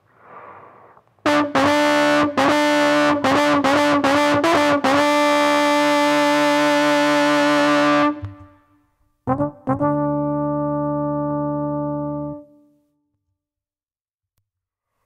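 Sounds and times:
trombone through effects: 1.2 - 8.4, 9.3 - 12.6.

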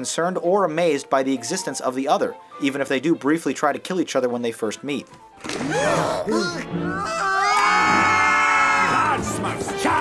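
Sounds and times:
cartoonish voices crying out: 5.6 - 9.3
voices screaming: 5.6 - 10.0.

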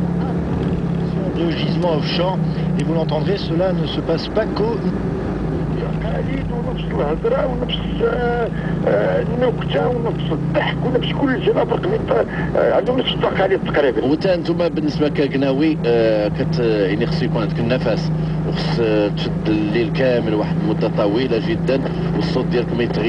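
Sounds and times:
car driving hum inside cabin: 0.0 - 23.0
voices talking: 0.1 - 23.0.

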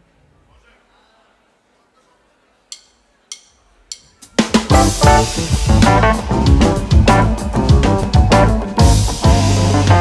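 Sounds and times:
drumstick count-in clicks: 2.7 - 4.3.

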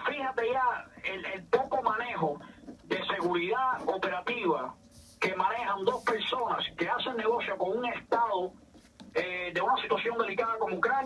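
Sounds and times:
person talking: 0.0 - 11.0.

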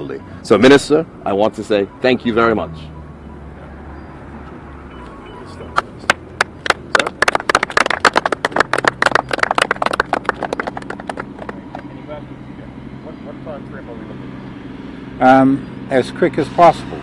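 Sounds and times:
people applauding: 6.1 - 11.9.

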